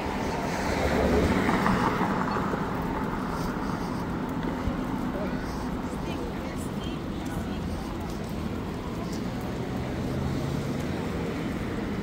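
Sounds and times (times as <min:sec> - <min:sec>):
low traffic rumble: 0:00.0 - 0:12.0
voices of people walking: 0:00.0 - 0:12.0.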